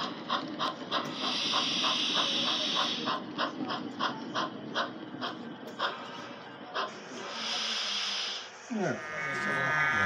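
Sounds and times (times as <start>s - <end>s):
model steam locomotive chuffs: 0.0s - 10.0s.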